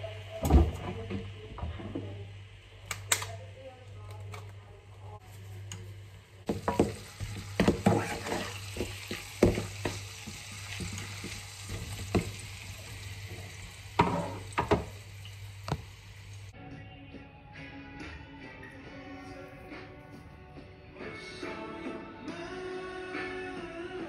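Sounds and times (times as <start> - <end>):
food sizzling in a frying pan: 5.4 - 16.5
utensil knocking on pan: 6.5 - 8.1.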